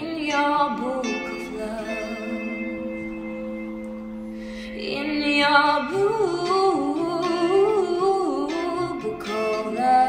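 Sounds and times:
woman singing wordless melody: 0.0s - 10.0s.

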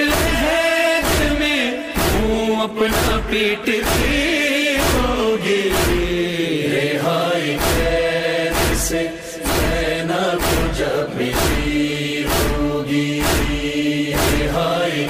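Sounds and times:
man chanting a mournful lament: 0.0s - 15.0s
deep steady thump: 5.7s - 6.2s, 7.6s - 14.6s.

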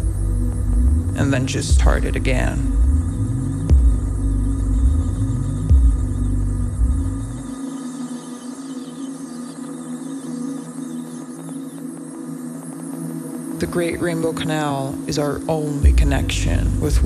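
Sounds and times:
deep throbbing bass with sweeps: 0.0s - 7.6s, 15.8s - 17.0s
steady held electronic tones: 0.0s - 17.0s.

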